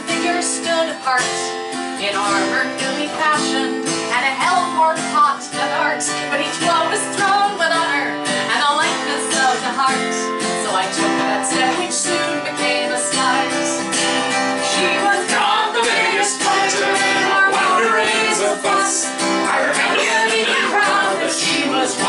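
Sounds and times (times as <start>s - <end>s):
woman singing: 0.0s - 14.0s, 14.6s - 22.0s
strummed acoustic guitar: 0.0s - 22.0s.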